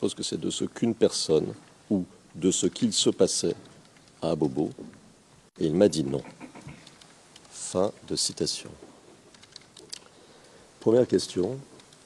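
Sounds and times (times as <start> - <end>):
man talking: 0.0 - 4.9, 5.6 - 6.7, 7.5 - 8.8, 10.8 - 11.7.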